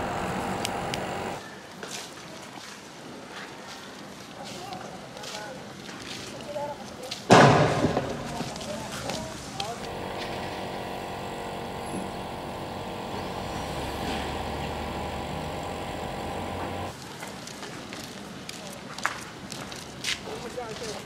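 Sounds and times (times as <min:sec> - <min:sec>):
vehicle engine running: 0:00.0 - 0:01.4, 0:09.8 - 0:17.0.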